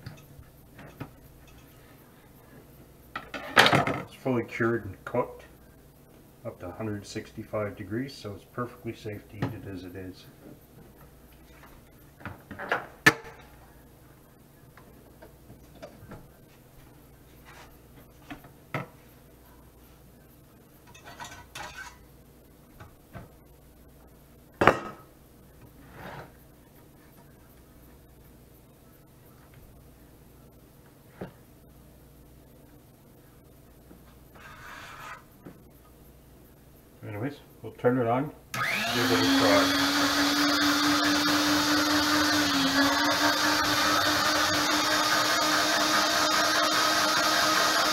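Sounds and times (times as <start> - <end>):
meat slicer scraping: 38.6 - 47.9.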